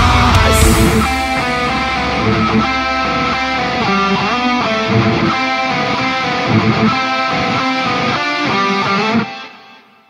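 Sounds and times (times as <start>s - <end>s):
low bass rumble: 0.0s - 7.2s
electric guitar picked notes: 0.0s - 10.0s.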